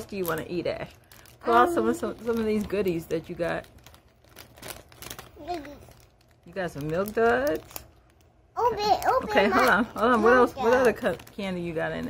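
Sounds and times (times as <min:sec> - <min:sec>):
candy wrappers rustling: 0:00.0 - 0:12.0.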